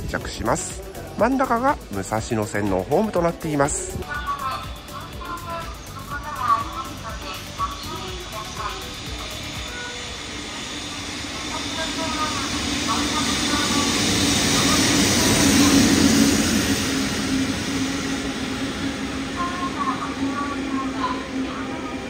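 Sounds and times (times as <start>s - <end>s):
train wheels rumbling on rails: 0.0s - 22.0s.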